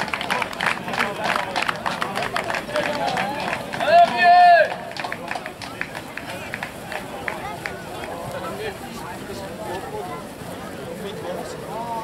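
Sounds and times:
voices of people: 0:00.0 - 0:12.0.

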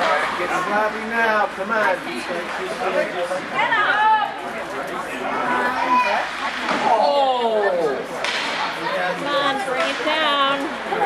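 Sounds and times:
spectators talking and calling out: 0:00.0 - 0:11.0
sharp crack: 0:08.2 - 0:08.8.

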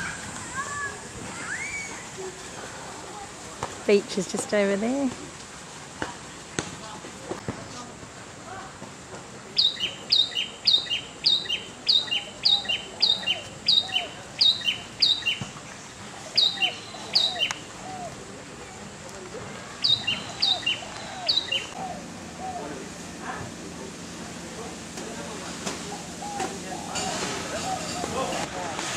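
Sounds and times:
bird chirping: 0:09.6 - 0:15.5, 0:16.3 - 0:17.7, 0:19.8 - 0:21.8.

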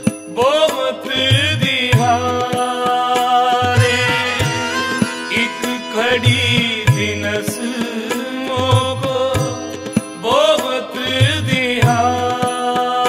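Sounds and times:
harmonium chords: 0:00.0 - 0:13.0
man singing: 0:00.0 - 0:13.0
tabla low strokes: 0:03.6 - 0:07.6.

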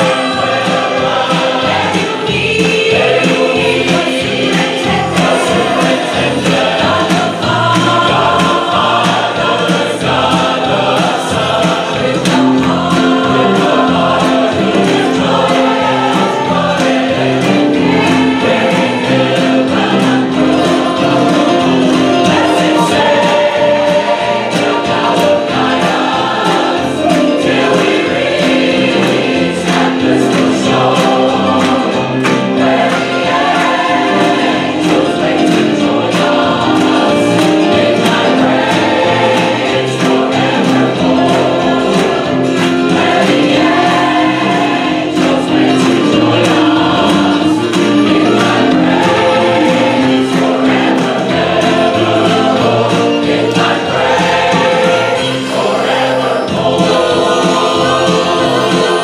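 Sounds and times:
hand claps: 0:00.0 - 0:54.9
choir singing gospel song: 0:00.0 - 0:59.0.

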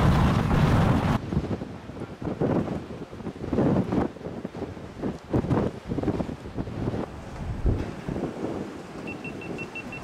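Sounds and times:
wind buffeting microphone: 0:00.0 - 0:10.0
short high beeps: 0:09.0 - 0:10.0.

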